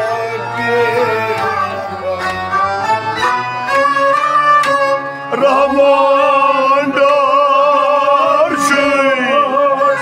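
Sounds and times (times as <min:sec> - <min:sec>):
men singing: 0:00.0 - 0:02.4, 0:05.3 - 0:10.0
string instrument melody: 0:00.0 - 0:10.0.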